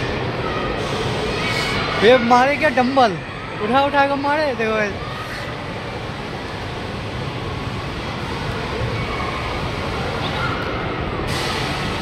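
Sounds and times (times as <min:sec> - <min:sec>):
amusement ride rumble and hiss: 0:00.0 - 0:12.0
faint crowd voices: 0:00.0 - 0:12.0.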